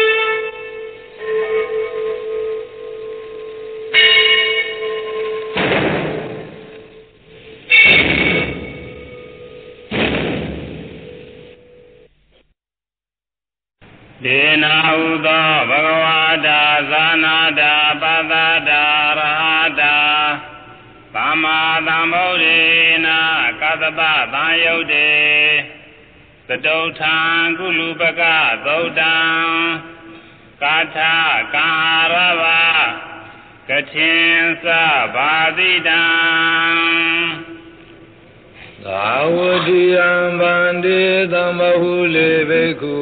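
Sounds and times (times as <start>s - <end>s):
bell ringing: 0.0s - 5.6s, 6.4s - 9.9s
steady held tone: 0.0s - 12.3s, 27.5s - 43.0s
man chanting: 14.2s - 25.8s, 26.5s - 37.8s, 38.8s - 43.0s.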